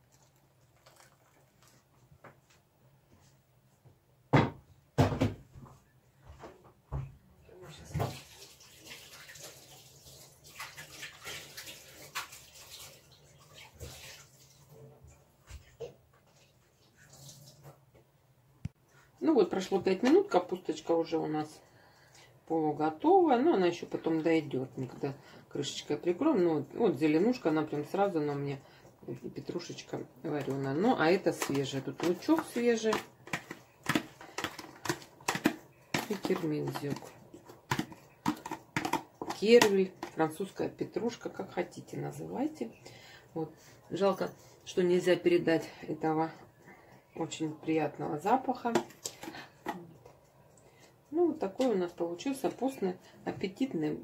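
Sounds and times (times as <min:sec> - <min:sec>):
soup bubbling and popping: 0:31.2 - 0:40.2.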